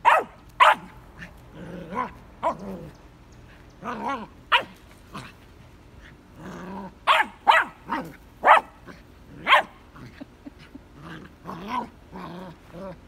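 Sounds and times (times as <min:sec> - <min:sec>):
puppy barking: 0:00.0 - 0:01.0, 0:04.5 - 0:04.8, 0:07.1 - 0:08.8, 0:09.4 - 0:09.8
puppy growling: 0:01.2 - 0:03.0, 0:03.8 - 0:05.4, 0:06.0 - 0:07.1, 0:08.8 - 0:13.0.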